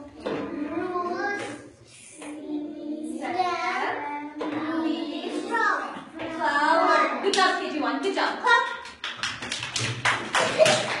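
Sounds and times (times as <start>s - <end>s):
children clapping: 8.7s - 11.0s.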